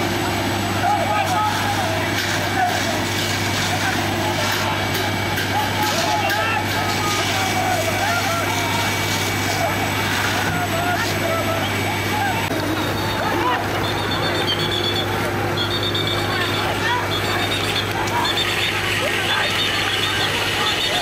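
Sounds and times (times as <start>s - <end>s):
engine and pump drone: 0.0s - 21.0s
water jet rushing: 0.0s - 21.0s
people shouting: 0.8s - 21.0s.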